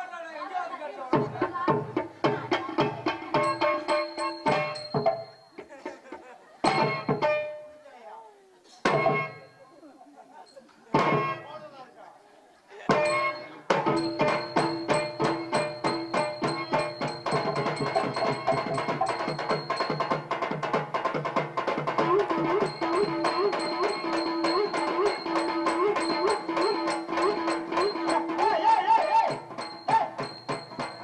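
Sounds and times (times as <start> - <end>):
tabla strokes: 1.1 - 7.8, 8.8 - 9.6, 10.9 - 11.4, 12.9 - 31.0
held melody: 2.4 - 5.8, 12.9 - 20.6, 21.9 - 31.0
fast dance rhythm: 12.9 - 31.0.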